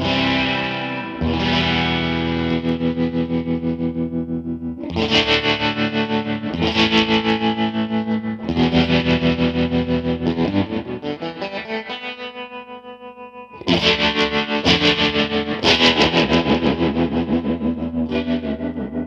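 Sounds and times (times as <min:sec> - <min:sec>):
fuzzed electric guitar chords: 0:00.0 - 0:19.0.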